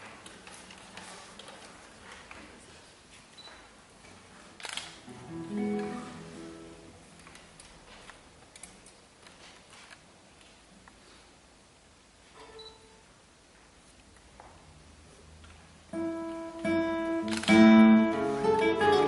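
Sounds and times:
plucked guitar notes: 5.1 - 7.0, 15.9 - 19.0.

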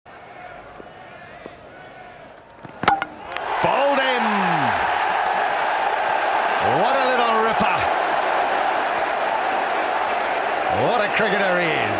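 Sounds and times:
crowd cheering: 0.1 - 11.9
ball hitting stumps: 2.6 - 3.5.

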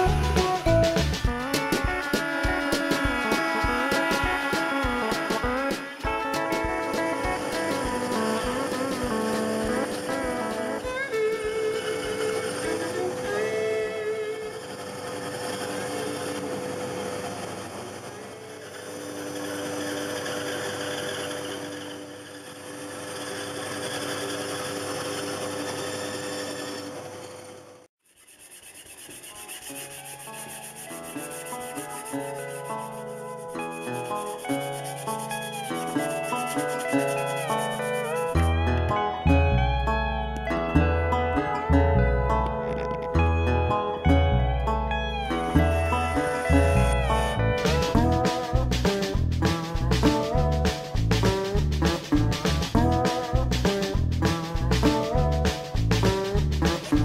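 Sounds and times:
background music: 0.0 - 14.4, 29.4 - 57.0
band saw cutting wood: 0.0 - 38.6, 45.4 - 57.0.

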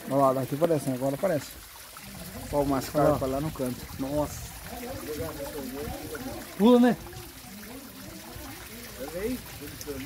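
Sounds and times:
water trickling into pond: 0.0 - 10.0.

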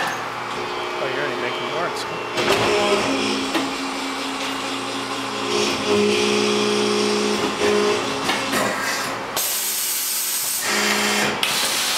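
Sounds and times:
hydraulic machine hum: 0.0 - 11.9.

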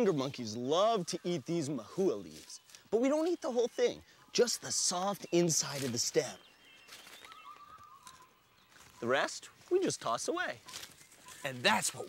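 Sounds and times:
distant bird whistled call: 4.1 - 9.2, 10.5 - 12.0.

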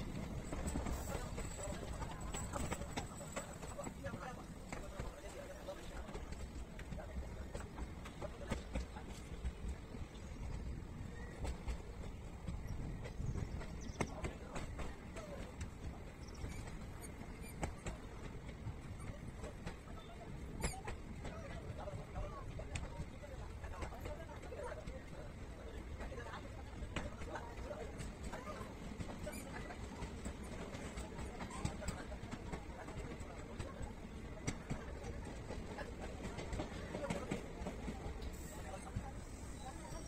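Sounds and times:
train rumble: 0.0 - 40.0.

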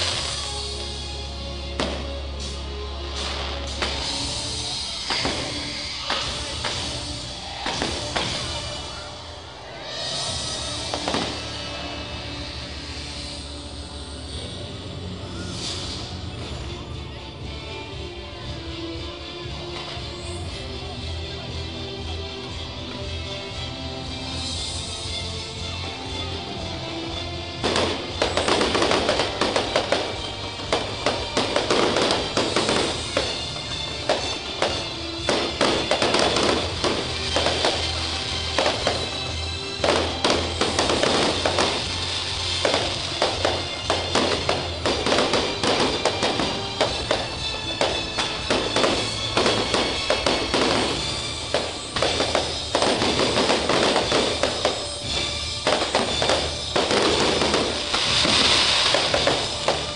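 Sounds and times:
music with steady bass: 0.0 - 9.5, 10.1 - 59.9
fireworks bangs and crackles: 0.0 - 18.8, 22.5 - 59.9.

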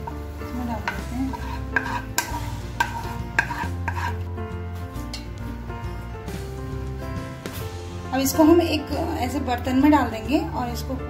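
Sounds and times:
spoon scraping caramel: 0.0 - 4.3.

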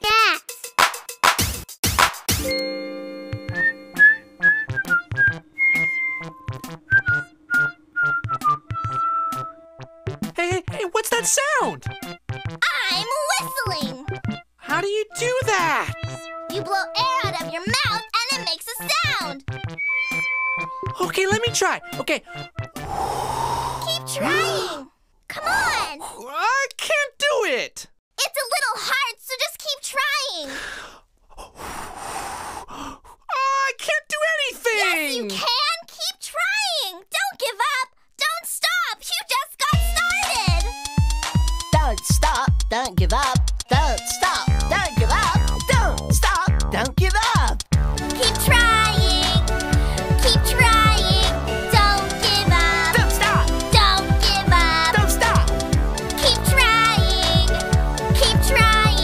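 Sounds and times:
synth chord: 2.4 - 4.6, 19.7 - 21.0
whistled tune: 3.3 - 9.9, 19.6 - 21.6
breathy gasp: 22.8 - 23.9, 30.4 - 33.3
kick drum: 39.8 - 51.2.

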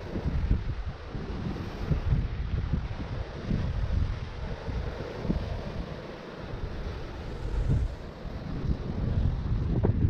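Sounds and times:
sea surf breaking: 0.0 - 10.0
wind buffeting microphone: 0.0 - 10.0.

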